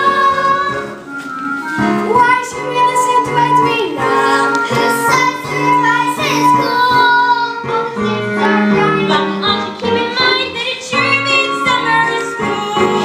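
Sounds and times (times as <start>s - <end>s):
girl singing: 0.0s - 1.0s, 1.6s - 13.0s
instrumental accompaniment: 0.0s - 13.0s.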